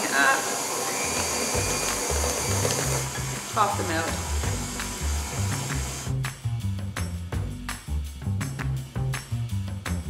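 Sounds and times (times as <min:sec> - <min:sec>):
electric stand mixer running: 0:00.0 - 0:06.1
music with stepped bass line: 0:01.6 - 0:10.0.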